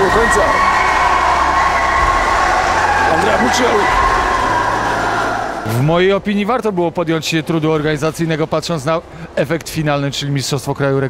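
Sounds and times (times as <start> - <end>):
loud crowd noise: 0.0 - 7.1.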